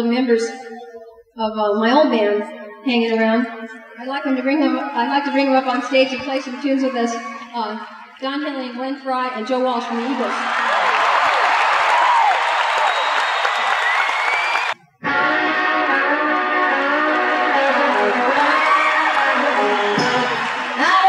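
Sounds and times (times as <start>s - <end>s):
concert audience cheering: 9.8s - 21.0s
electric guitars playing chords: 15.0s - 21.0s.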